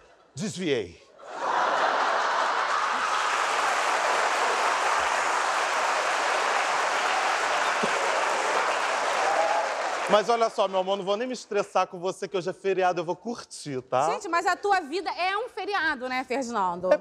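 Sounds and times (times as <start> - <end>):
audience applauding: 1.4 - 11.4.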